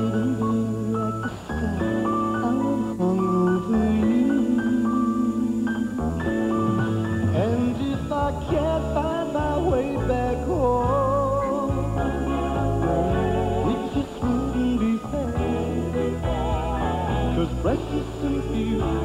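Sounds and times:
man singing a pop ballad: 0:00.0 - 0:06.1, 0:07.2 - 0:19.0
band accompaniment: 0:06.3 - 0:10.0.

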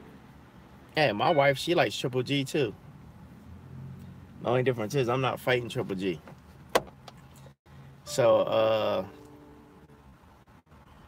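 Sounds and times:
low steady hum in car cabin: 0:00.0 - 0:03.4, 0:04.2 - 0:11.0.

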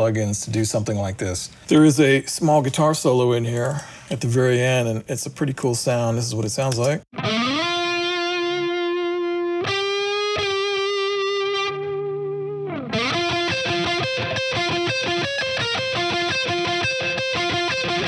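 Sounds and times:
distorted electric guitar solo: 0:07.1 - 0:18.0.

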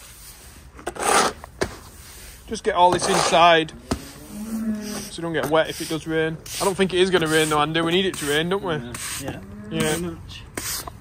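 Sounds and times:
broom scraping concrete: 0:00.0 - 0:11.0.

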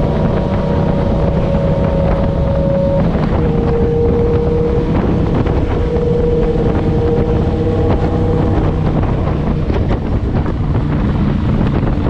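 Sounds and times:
motorcycle engine running: 0:00.0 - 0:12.0
wind rushing over microphone: 0:00.0 - 0:12.0.

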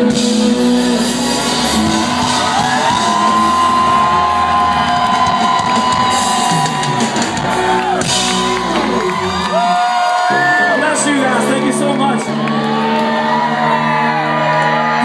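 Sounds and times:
live rock band playing: 0:00.0 - 0:15.0
crowd whooping and shouting: 0:00.1 - 0:15.0.

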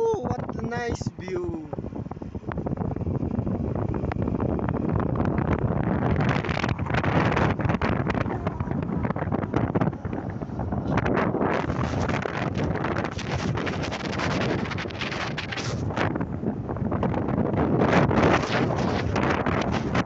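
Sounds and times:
wind buffeting microphone: 0:00.0 - 0:20.0
motorcycle engine running: 0:01.8 - 0:20.0.

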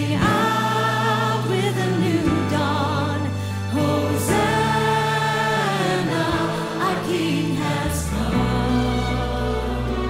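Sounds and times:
choir and orchestra: 0:00.0 - 0:10.0.

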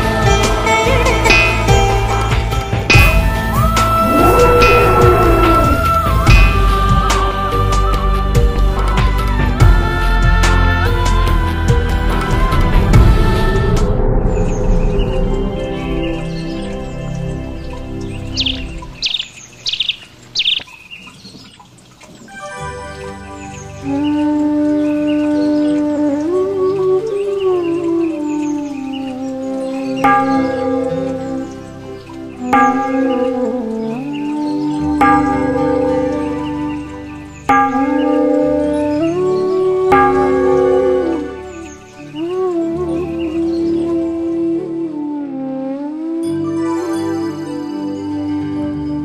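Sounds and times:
music with wind instrument: 0:00.0 - 0:18.9, 0:22.3 - 0:49.0
background music: 0:00.0 - 0:20.6, 0:22.2 - 0:49.0
short high bird chirps: 0:18.4 - 0:20.8.

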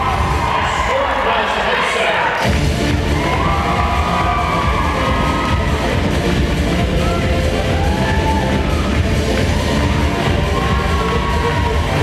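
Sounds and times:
dance music with heavy beat: 0:00.0 - 0:12.0.

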